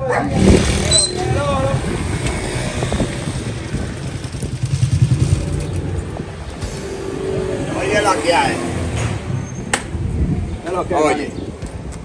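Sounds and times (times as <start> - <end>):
motorcycle engine rumbling: 0.0 - 10.7.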